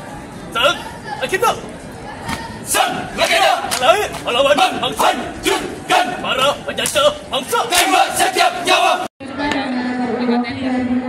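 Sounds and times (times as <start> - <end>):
group shouting a chant: 2.3 - 9.1.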